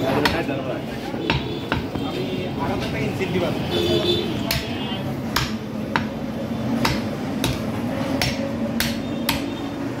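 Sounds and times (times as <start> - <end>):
cleaver chopping meat on wood block: 0.0 - 0.6, 1.2 - 2.0, 4.3 - 9.6.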